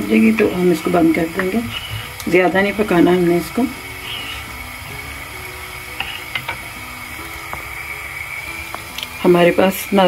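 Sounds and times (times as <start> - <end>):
soft background music: 0.0 - 10.0
syrup boiling in a saucepan: 0.0 - 10.0.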